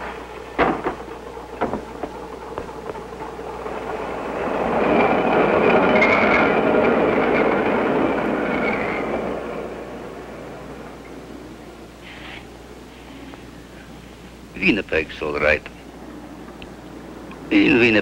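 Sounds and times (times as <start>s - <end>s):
streetcar passing on rails: 0.0s - 18.0s
knocks: 0.6s - 3.1s
wheels squealing on track: 3.6s - 11.2s.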